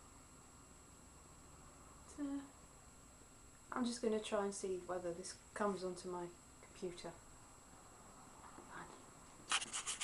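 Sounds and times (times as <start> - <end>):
fingers rubbing on camera body: 9.5 - 10.0.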